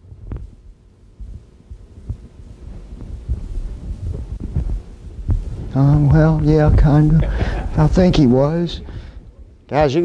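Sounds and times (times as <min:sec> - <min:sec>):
footsteps thudding: 0:01.2 - 0:07.7.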